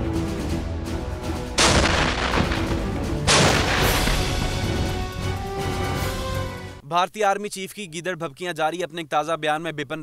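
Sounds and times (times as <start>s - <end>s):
background music: 0.0s - 6.9s
tank cannon firing: 1.6s - 4.6s.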